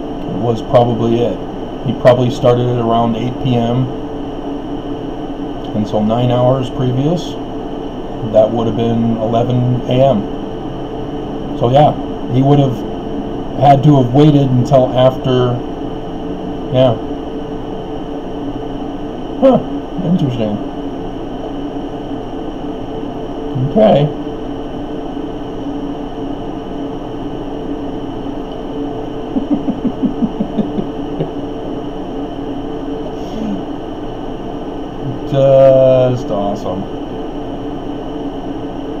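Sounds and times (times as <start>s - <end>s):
constant tones: 0.0s - 39.0s
steady hum with hiss: 0.0s - 39.0s.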